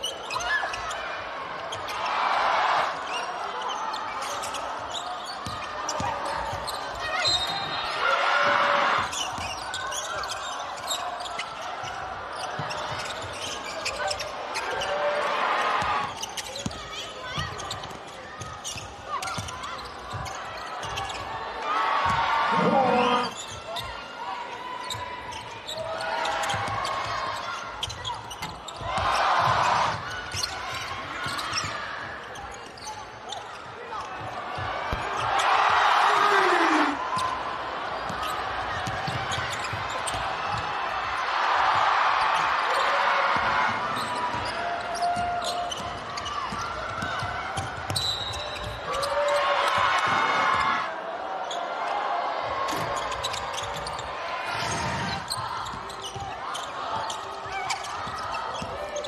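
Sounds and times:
crowd voices: 0:00.0 - 0:59.0
basketball bouncing on wooden court: 0:05.4 - 0:07.5, 0:12.5 - 0:14.0, 0:16.0 - 0:21.2, 0:26.4 - 0:27.2, 0:38.1 - 0:40.7, 0:43.3 - 0:48.8, 0:54.7 - 0:59.0.

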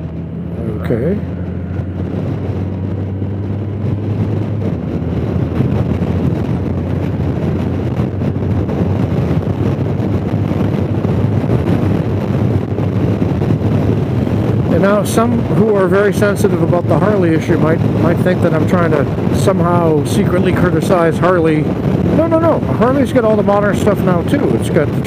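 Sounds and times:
motorcycle engine drone: 0:00.0 - 0:25.0
wind rushing on microphone: 0:00.0 - 0:25.0.

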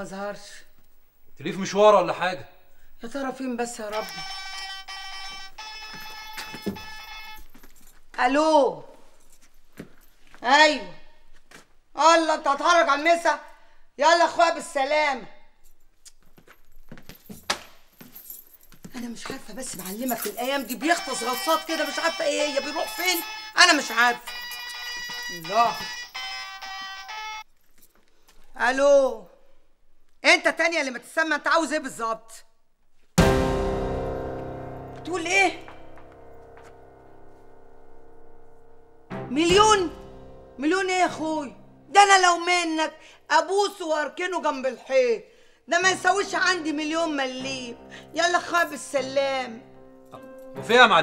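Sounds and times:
buzzy phone ringtone: 0:03.9 - 0:07.6, 0:20.2 - 0:27.4.

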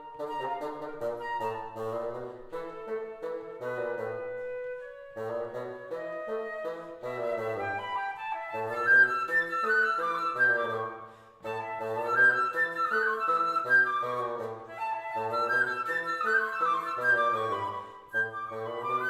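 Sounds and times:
flute playing quick lines: 0:00.0 - 0:19.0.

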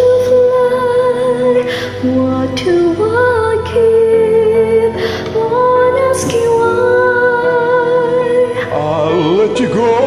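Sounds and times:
woman singing a slow ballad: 0:00.0 - 0:09.7
karaoke backing track: 0:00.0 - 0:10.0.

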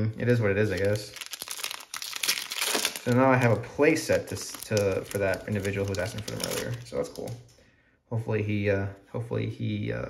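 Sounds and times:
wrapper strip tearing: 0:00.2 - 0:07.4
foil wrapper crinkling: 0:00.2 - 0:07.5.

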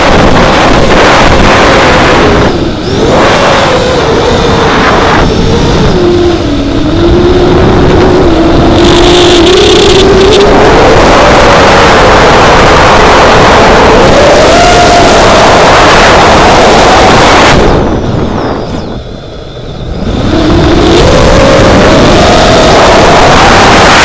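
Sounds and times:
drone motors whining: 0:00.0 - 0:24.0
wind rushing on microphone: 0:00.0 - 0:24.0.

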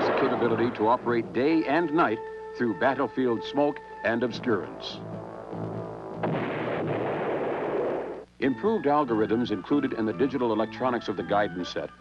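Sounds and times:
missile launch blast: 0:00.0 - 0:01.1, 0:06.2 - 0:08.2.

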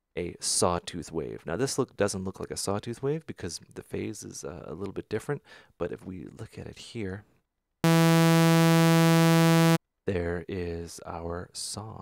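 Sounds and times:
sawtooth synthesizer note: 0:07.8 - 0:09.8.

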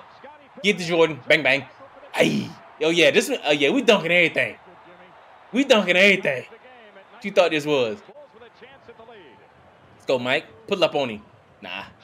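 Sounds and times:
arena noise: 0:00.0 - 0:12.0
commentator talking: 0:00.2 - 0:04.7, 0:05.5 - 0:09.4.

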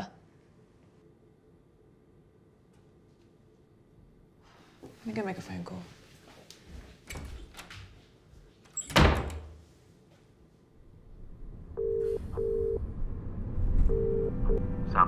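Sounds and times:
door shutting thud: 0:08.8 - 0:09.6
low hum: 0:10.7 - 0:15.0
telephone ringing tone: 0:11.8 - 0:12.8, 0:13.9 - 0:14.6.

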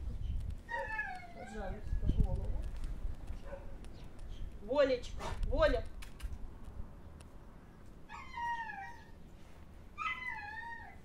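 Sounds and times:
dog whining: 0:00.6 - 0:02.1, 0:08.1 - 0:09.2, 0:10.0 - 0:11.0.

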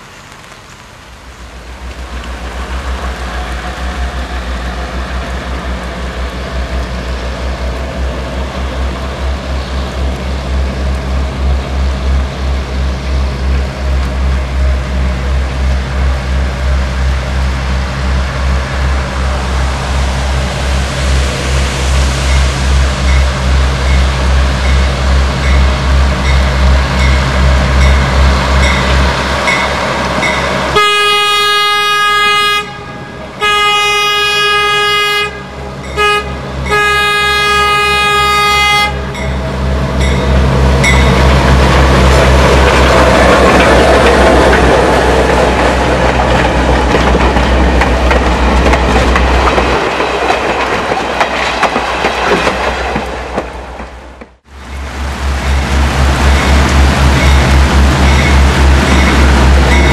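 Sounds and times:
train wheels rushing: 0:00.0 - 0:59.9
diesel locomotive engine throbbing: 0:01.0 - 0:59.9
locomotive horn blasts: 0:30.7 - 0:39.3.

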